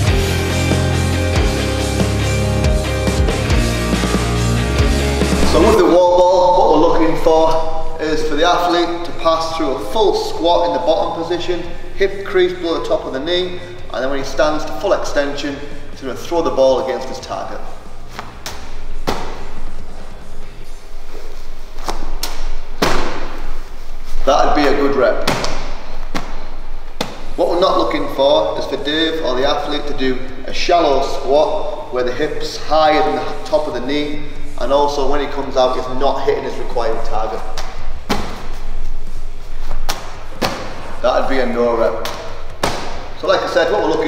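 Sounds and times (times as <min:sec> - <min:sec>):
ball slapping into hands: 0:18.2 - 0:19.5, 0:25.2 - 0:27.4, 0:37.5 - 0:38.6, 0:39.7 - 0:40.9, 0:42.0 - 0:43.1
medicine ball thudding against wall: 0:18.4 - 0:19.5, 0:37.6 - 0:38.6, 0:39.9 - 0:40.8, 0:42.0 - 0:43.1.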